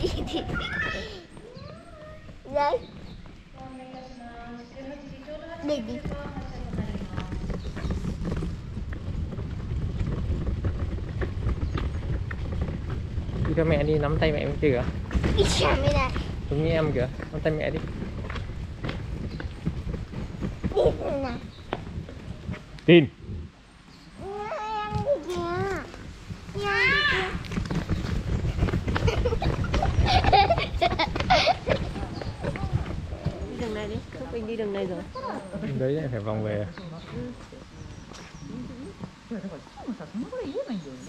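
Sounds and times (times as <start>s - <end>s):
footsteps on stone paving: 0.0s - 41.0s.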